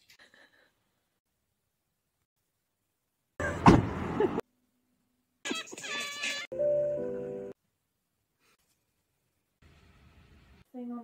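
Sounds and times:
outdoor noise: 0.0s - 6.5s, 7.5s - 11.0s
loud deep thump: 3.6s - 4.0s.

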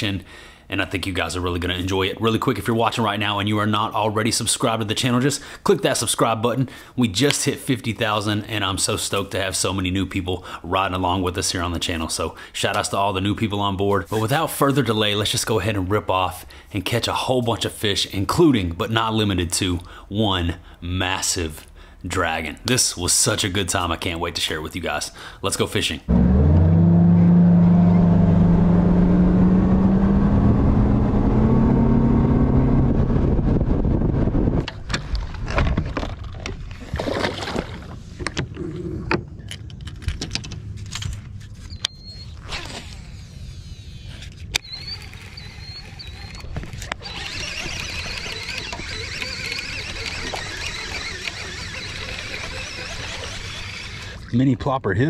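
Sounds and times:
outboard motor running: 44.7s - 54.3s.

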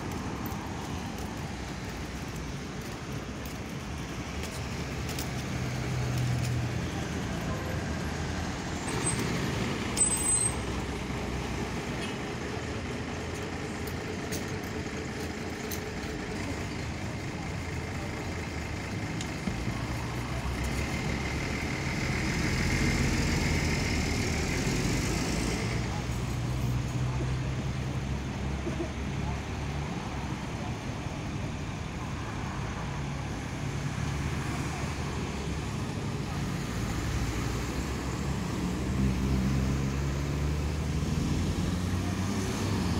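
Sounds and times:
low rumble of passing vehicles: 0.0s - 42.9s.

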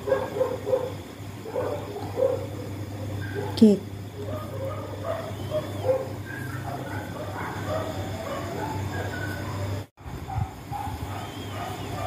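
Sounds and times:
steady low hum: 0.0s - 12.0s
dog whimpering: 4.4s - 9.8s.

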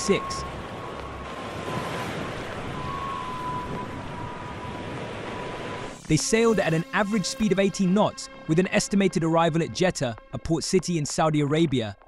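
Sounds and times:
rushing wind: 0.0s - 6.0s
sea noise: 0.0s - 8.5s.

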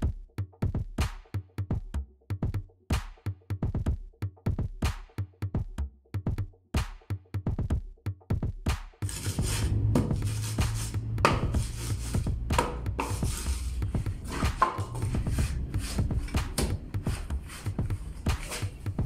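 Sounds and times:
electronic music: 9.0s - 19.0s
wooden board scraping concrete: 9.0s - 19.0s.

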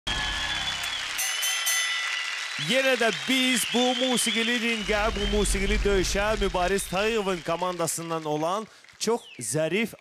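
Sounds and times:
audience applauding: 0.1s - 10.0s
high ringing notes: 1.2s - 2.6s.

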